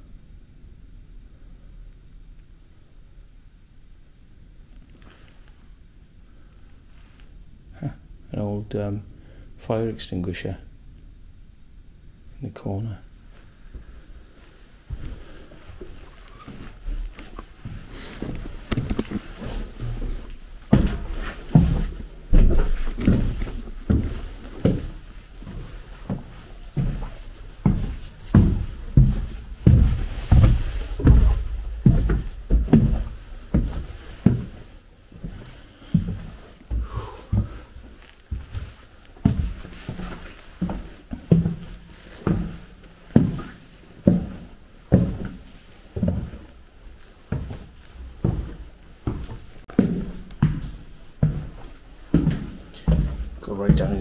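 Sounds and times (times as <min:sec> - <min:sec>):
footsteps on wooden floorboards: 0:14.9 - 0:54.0.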